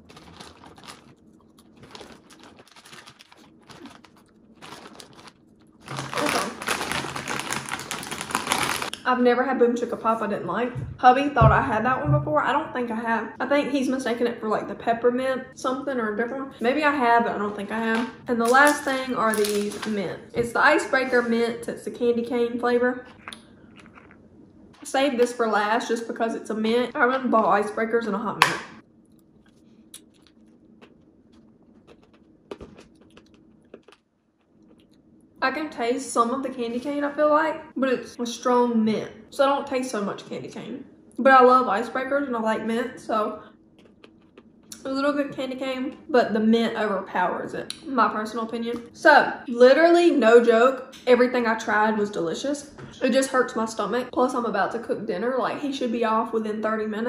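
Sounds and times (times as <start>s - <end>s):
popcorn crunching and chewing: 0.0s - 9.0s, 23.1s - 24.2s, 29.1s - 35.0s, 43.8s - 44.9s.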